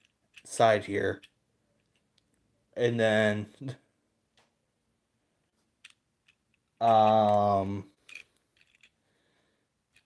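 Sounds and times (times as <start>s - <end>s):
toy train being handled clicks: 0.0s - 2.3s, 5.8s - 9.0s.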